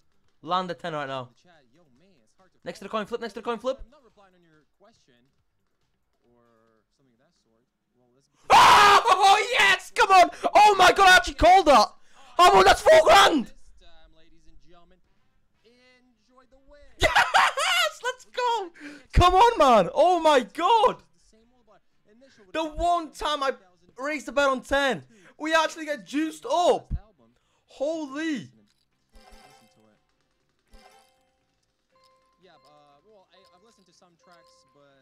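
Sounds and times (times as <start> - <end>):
faint background music: 0.0 - 35.0.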